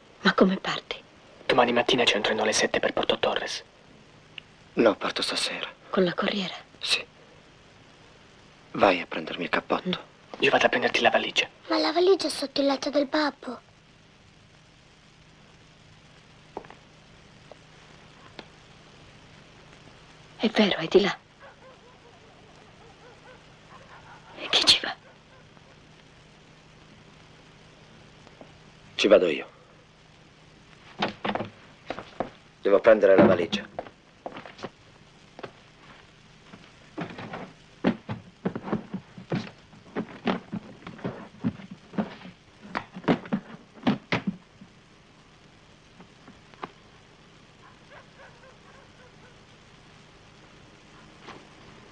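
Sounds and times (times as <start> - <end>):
film soundtrack hiss and hum: 0.0 - 51.9
knocks and thuds: 31.0 - 32.4, 37.0 - 44.5.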